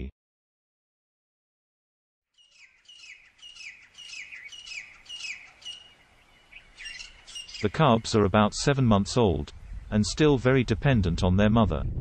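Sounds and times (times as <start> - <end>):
bird calling downward notes: 2.4 - 8.2.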